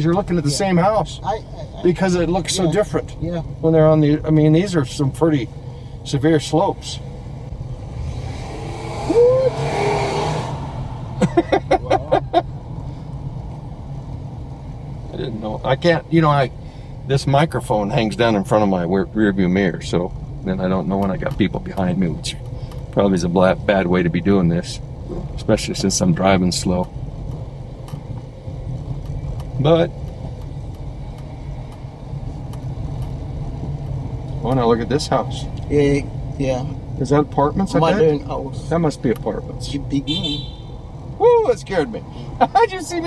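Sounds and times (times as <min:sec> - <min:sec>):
car engine and road hum: 0:00.0 - 0:43.0
rush of noise: 0:07.6 - 0:13.0.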